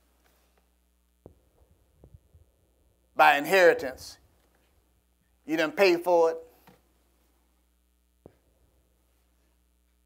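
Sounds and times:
steady low hum: 0:00.0 - 0:10.0
faint soft low thumps: 0:01.2 - 0:03.0.

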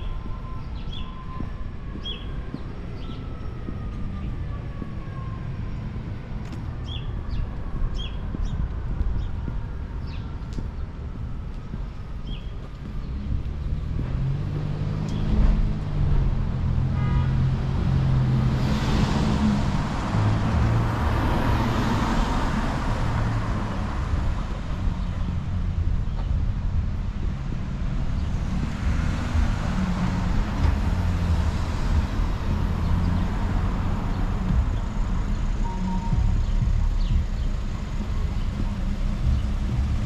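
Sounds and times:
cars passing by: 0:00.0 - 0:40.0.

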